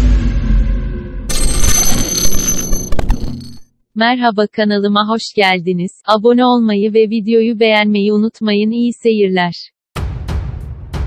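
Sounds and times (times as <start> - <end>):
high-pitched ringing shimmer: 1.3 - 3.6.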